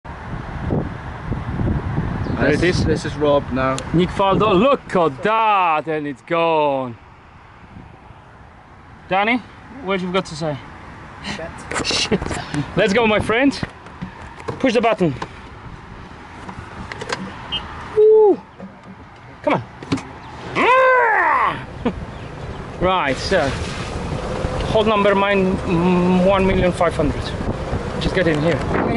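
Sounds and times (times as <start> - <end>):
wind buffeting microphone: 0.1 - 5.4, 21.6 - 28.9
golf cart running: 21.7 - 28.9.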